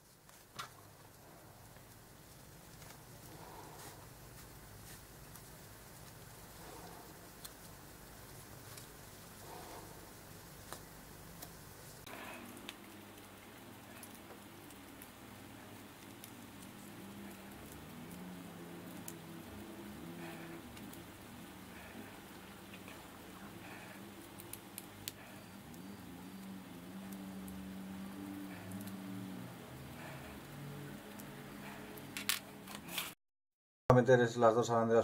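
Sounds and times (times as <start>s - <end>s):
small parts rubbing and tapping: 32.0s - 33.2s.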